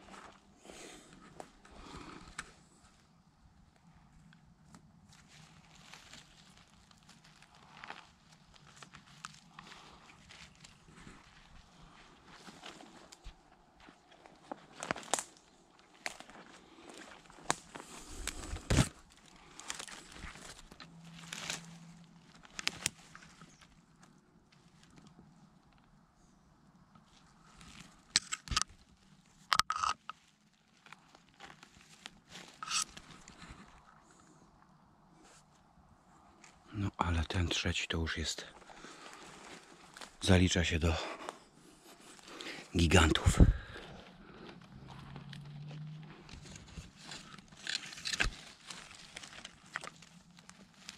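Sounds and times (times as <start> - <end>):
footsteps on dry pine needles: 5.0 - 24.1, 30.1 - 34.0, 38.5 - 40.2, 43.6 - 50.9
twigs snapping: 14.7 - 24.1, 44.3 - 50.9.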